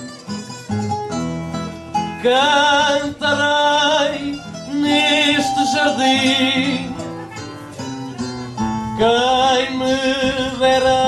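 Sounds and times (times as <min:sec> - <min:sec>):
acoustic guitars plucking notes: 0:00.0 - 0:11.0.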